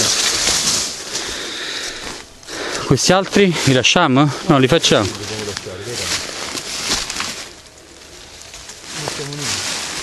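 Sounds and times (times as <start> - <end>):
rustling in dry leaves: 0.0 - 10.0.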